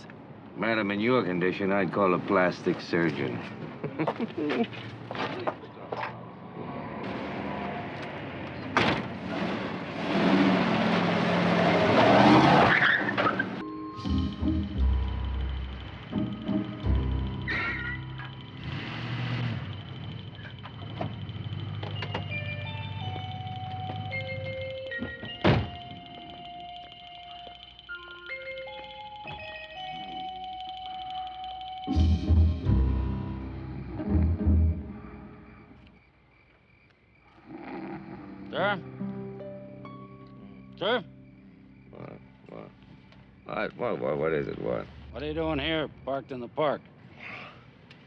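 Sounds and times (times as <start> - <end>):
car engine pulling away: 6.2 - 24.8
background score music: 13.4 - 20.0, 31.9 - 35.8, 38.2 - 43.7.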